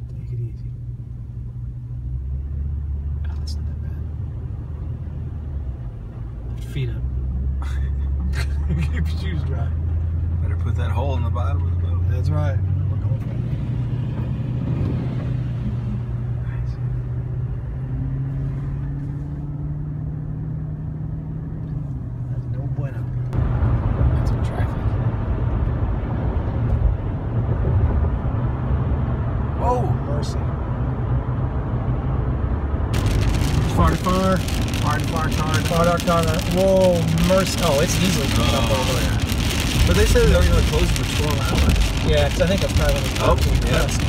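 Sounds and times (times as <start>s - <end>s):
car engine hum: 0.0s - 44.0s
road rumble: 0.0s - 44.0s.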